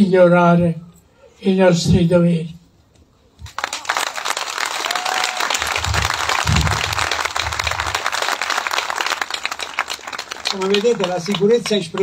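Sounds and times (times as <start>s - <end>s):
audience applause: 3.5s - 12.0s.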